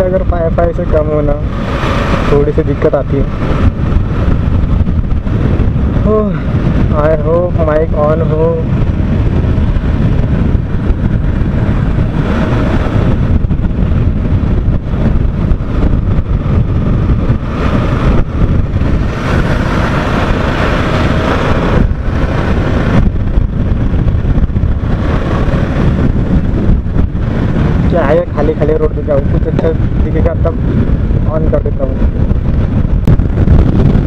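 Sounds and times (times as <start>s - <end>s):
wind roar on microphone: 0.0s - 34.0s
motorcycle engine running: 3.2s - 29.1s.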